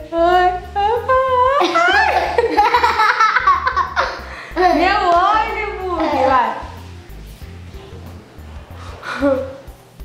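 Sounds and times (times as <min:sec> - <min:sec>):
woman and girl laughing: 0:01.6 - 0:04.3, 0:09.0 - 0:09.6.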